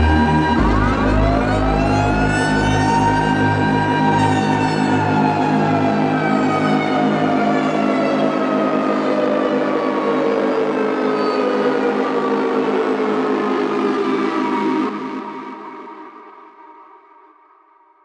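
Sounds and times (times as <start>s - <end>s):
low pulsing techno beat: 0.0s - 6.2s
siren-like synth tone: 0.0s - 13.7s.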